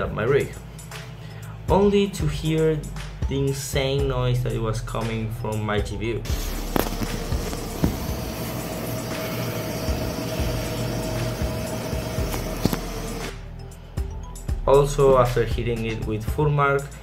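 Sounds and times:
graphics card fans whirring: 6.3 - 13.6.

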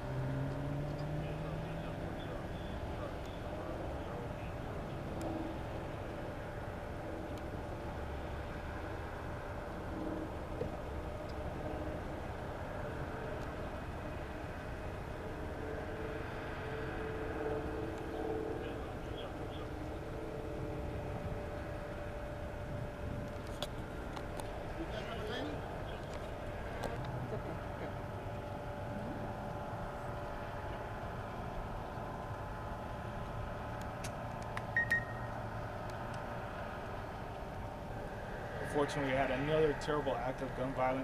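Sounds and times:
faint steady hum: 0.0 - 41.0
low outdoor rumble: 0.0 - 41.0
short high beep: 34.8 - 35.3.

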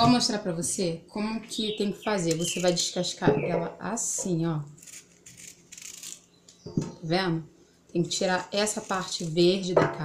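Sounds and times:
knife scraping banana peel: 4.7 - 6.3, 8.4 - 9.6.

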